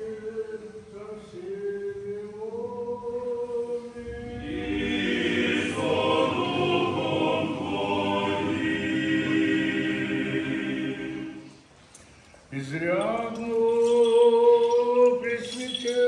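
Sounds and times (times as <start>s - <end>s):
choir singing unaccompanied: 0.0s - 11.6s.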